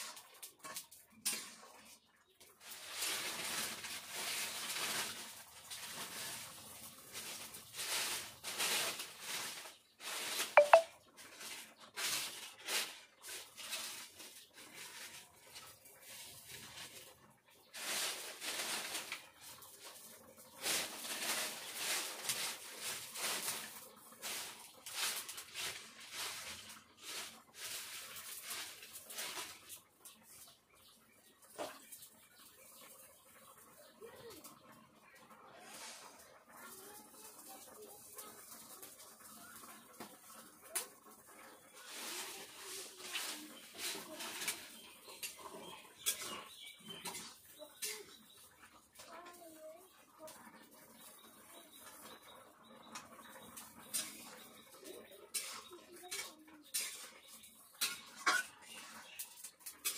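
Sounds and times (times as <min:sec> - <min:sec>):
food sizzling in oil: 0:55.3 - 0:59.9.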